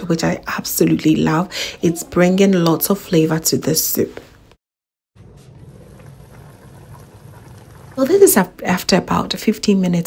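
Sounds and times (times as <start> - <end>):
chicken simmering in a pot: 5.2 - 8.7.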